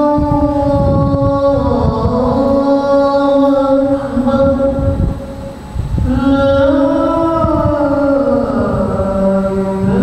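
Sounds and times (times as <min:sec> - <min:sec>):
man chanting through a microphone: 0:00.0 - 0:10.0.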